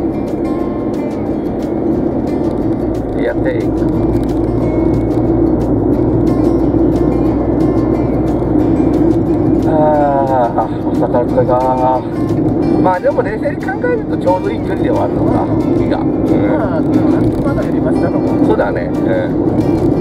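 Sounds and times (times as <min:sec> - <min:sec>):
car road and engine noise: 0:00.0 - 0:20.0
music playing: 0:00.0 - 0:20.0
person speaking: 0:09.6 - 0:12.2, 0:12.8 - 0:19.4.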